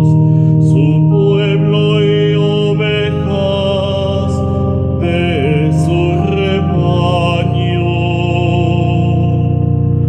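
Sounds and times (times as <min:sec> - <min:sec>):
man singing a hymn: 0:00.0 - 0:09.8
keyboard chords: 0:00.0 - 0:10.0.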